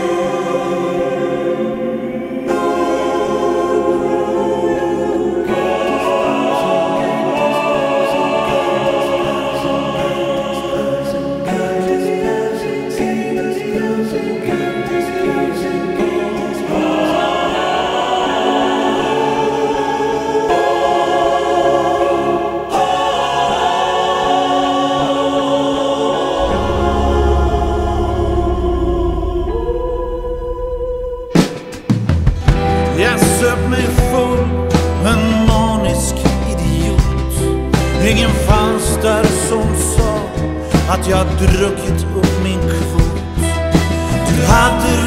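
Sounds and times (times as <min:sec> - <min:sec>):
wordless choir singing: 0:00.0 - 0:45.0
band playing: 0:26.4 - 0:30.0.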